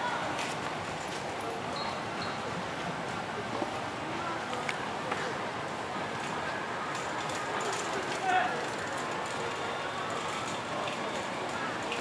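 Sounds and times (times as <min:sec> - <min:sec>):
people talking: 0:00.0 - 0:00.6, 0:03.3 - 0:12.0
outdoor background noise: 0:00.0 - 0:12.0.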